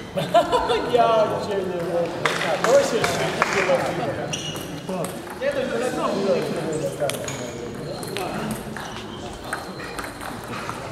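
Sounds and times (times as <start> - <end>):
murmur of voices: 0.0 - 10.9.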